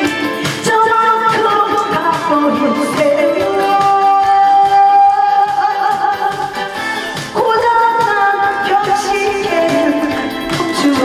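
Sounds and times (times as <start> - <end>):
amplified backing music: 0.0 - 11.0
woman singing: 0.0 - 11.0.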